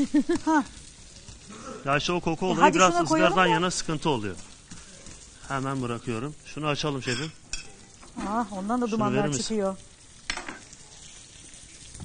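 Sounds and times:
contact grill sizzling: 0.0s - 12.0s.

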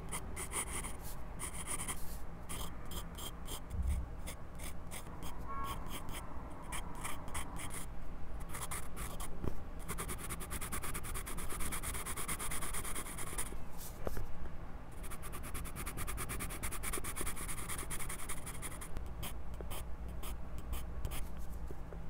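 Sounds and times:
pencil scratching on paper: 0.1s - 9.3s, 9.9s - 13.9s.

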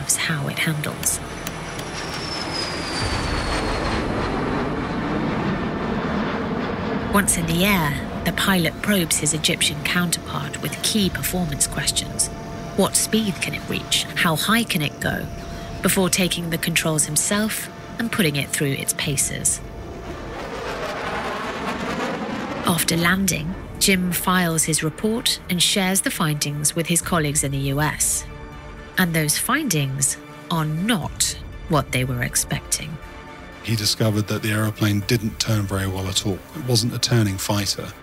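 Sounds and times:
jet engine roar: 0.0s - 28.0s
high whine falling in pitch: 1.2s - 5.9s, 7.4s - 24.4s.

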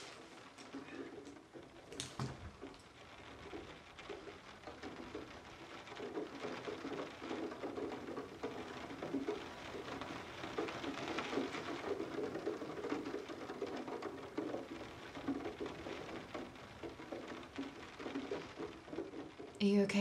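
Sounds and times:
rain pattering on a window: 0.0s - 20.0s.

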